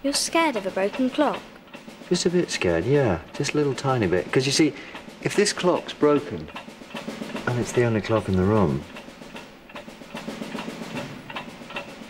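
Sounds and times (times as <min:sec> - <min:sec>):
clock-like ticking: 0:00.0 - 0:12.0
orchestral snare drum: 0:00.0 - 0:12.0.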